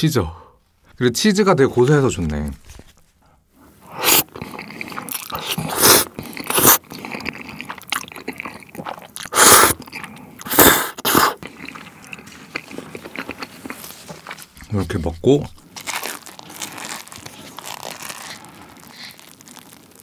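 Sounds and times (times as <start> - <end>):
person chewing: 3.6 - 20.0
person slurping noodles: 3.7 - 15.1.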